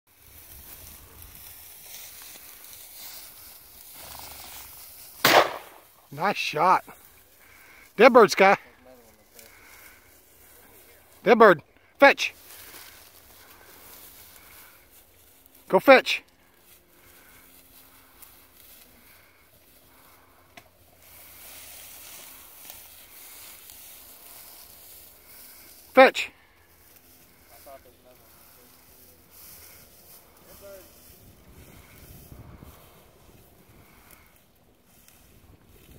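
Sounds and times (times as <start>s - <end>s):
rustling in dry grass: 0.1s - 11.2s, 12.3s - 35.9s
shotgun shot with echo: 5.2s - 5.8s.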